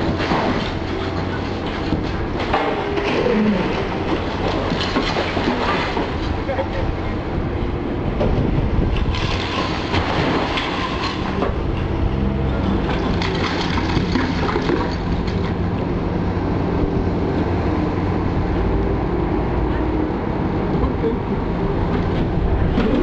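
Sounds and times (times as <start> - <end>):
diesel engine drone: 0.0 - 23.0
masonry breaking and rubble falling: 9.0 - 11.5, 12.8 - 15.4.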